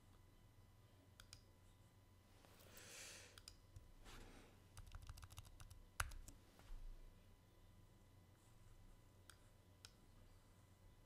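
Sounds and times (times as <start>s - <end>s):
soft breath: 2.4s - 3.4s, 4.0s - 4.7s.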